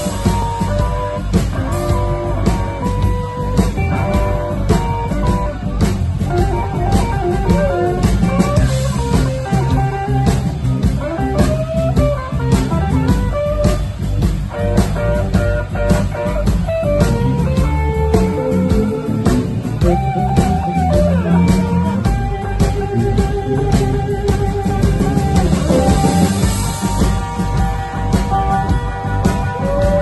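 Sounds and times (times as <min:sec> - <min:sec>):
bass guitar: 0:00.0 - 0:30.0
electric blues guitar lead: 0:00.0 - 0:30.0
rhythm section: 0:00.0 - 0:30.0.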